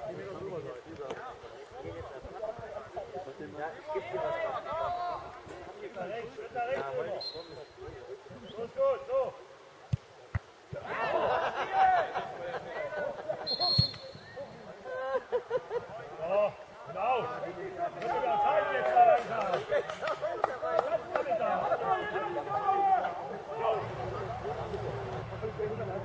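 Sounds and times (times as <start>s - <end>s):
referee's whistle blast: 13.4s - 14.2s
players and spectators calling out: 16.5s - 19.4s, 20.2s - 26.0s.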